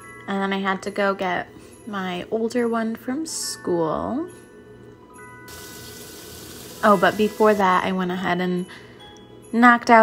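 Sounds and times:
faint background music: 0.0 - 10.0
kitchen tap running: 5.5 - 8.0.

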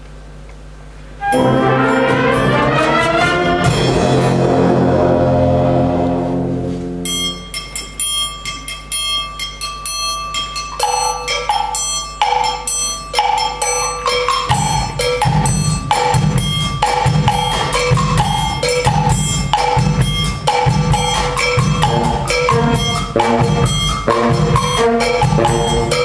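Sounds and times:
wind band brass chord: 1.2 - 7.5, 21.8 - 26.0
two-note pitched percussion figure: 1.2 - 7.9, 14.6 - 26.0
deep drum beats: 1.4 - 6.7, 14.5 - 26.0
latin drum-kit groove: 13.2 - 26.0.

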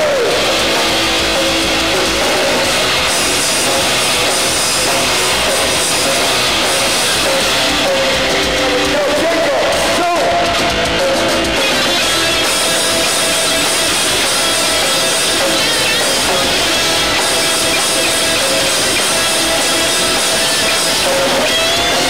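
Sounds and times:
vocals: 0.0 - 1.1, 2.0 - 11.1
distorted electric guitars: 0.0 - 22.0
drums: 0.0 - 22.0.

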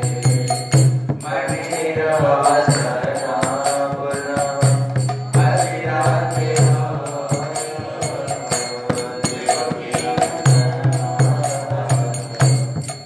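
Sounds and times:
brass hand cymbals ringing: 0.0 - 13.0
man singing a chant: 0.0 - 13.0.

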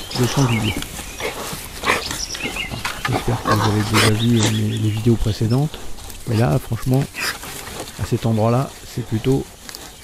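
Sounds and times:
small bird chirping: 0.0 - 5.6
wild boar grunting: 0.0 - 10.0.

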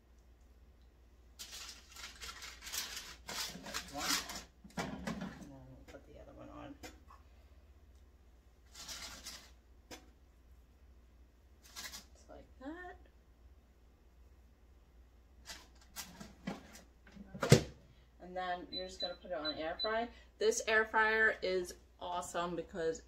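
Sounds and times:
parchment paper crinkling: 1.4 - 4.6, 8.7 - 9.6, 11.6 - 12.2.

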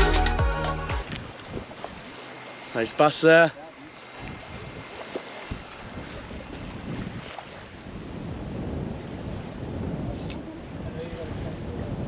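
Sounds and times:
wind gusting on microphone: 1.0 - 2.2, 4.2 - 12.0
sea washing against jetty: 1.0 - 12.0.

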